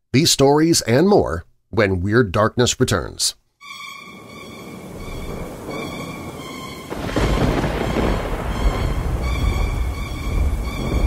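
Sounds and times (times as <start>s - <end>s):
rumbling crash: 4.8s - 11.0s.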